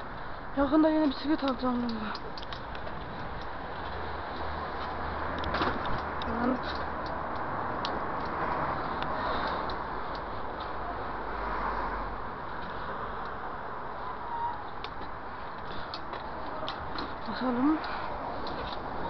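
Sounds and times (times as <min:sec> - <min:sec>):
bike ticks and rattles: 0:01.0 - 0:10.8, 0:14.8 - 0:19.0.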